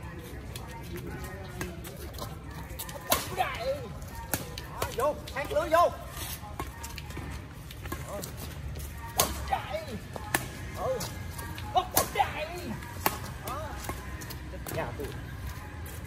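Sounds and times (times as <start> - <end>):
badminton rackets hitting shuttlecock: 11.8 - 14.0.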